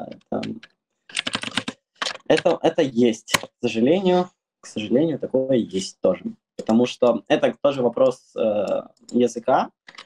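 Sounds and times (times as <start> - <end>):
keyboard typing clicks: 0.0 - 2.6
person speaking: 0.0 - 10.0.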